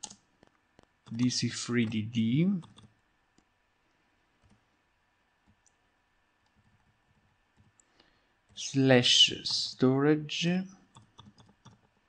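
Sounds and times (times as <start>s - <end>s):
keyboard keys typing: 0.0s - 0.2s, 1.0s - 2.9s, 10.9s - 11.9s.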